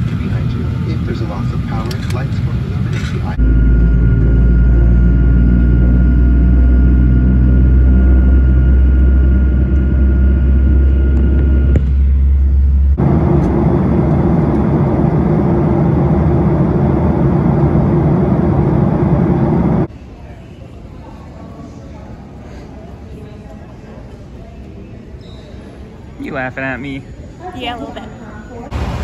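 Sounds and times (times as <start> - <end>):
jet engine hum: 0.0 - 19.9
thin steady whine: 0.0 - 19.9, 25.8 - 29.0.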